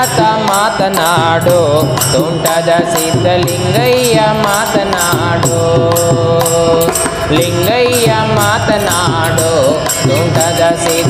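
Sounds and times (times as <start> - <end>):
held accompanying notes: 0.0 - 11.0
man singing devotional song: 0.0 - 11.0.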